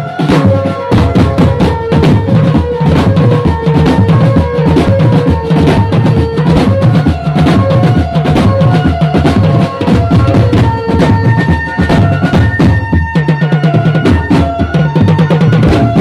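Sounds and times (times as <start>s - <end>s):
bass drums beaten with mallets: 0.0s - 16.0s.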